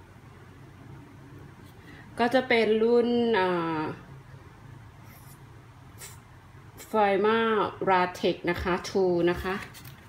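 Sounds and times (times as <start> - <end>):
low background hum: 0.0 - 10.0
woman speaking: 2.2 - 4.1, 6.8 - 9.8.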